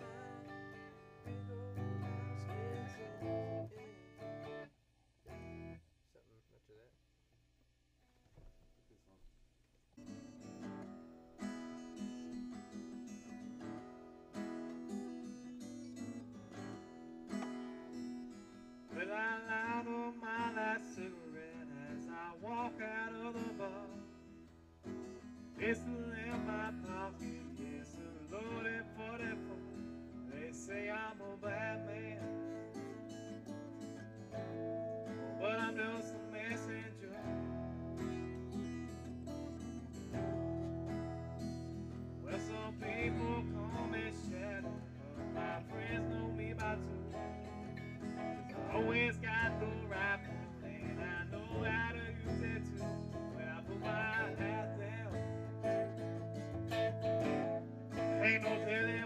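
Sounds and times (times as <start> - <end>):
guitar music: 0.0 - 4.7, 5.3 - 5.8, 10.0 - 59.0.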